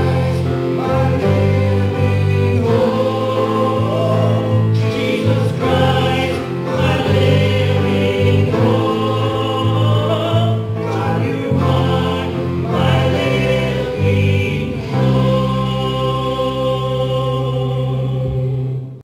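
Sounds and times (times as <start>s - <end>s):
piano: 0.0s - 19.0s
voices singing together: 0.0s - 19.0s.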